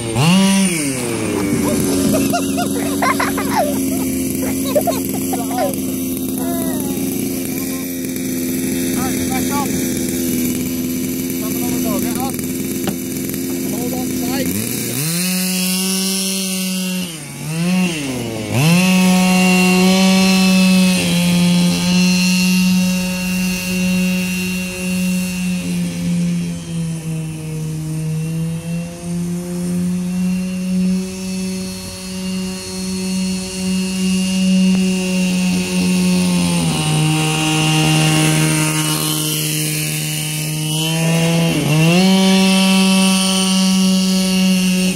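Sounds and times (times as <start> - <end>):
rc car engine revving: 0.0 - 44.9.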